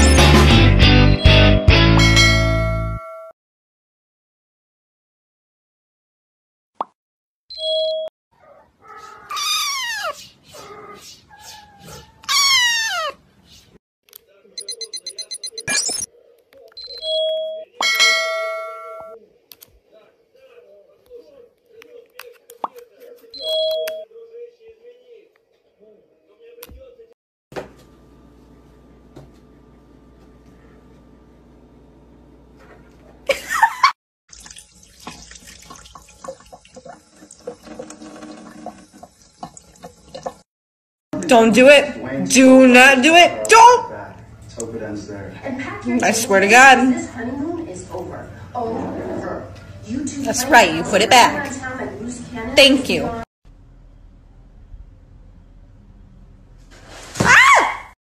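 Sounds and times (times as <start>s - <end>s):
brief steady tone: 14.6s - 16.1s
sink faucet running water: 34.3s - 40.5s.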